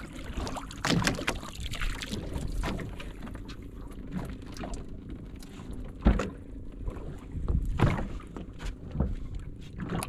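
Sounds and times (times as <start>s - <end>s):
boat engine running: 0.0s - 10.0s
light clicks and taps on boat: 0.0s - 10.0s.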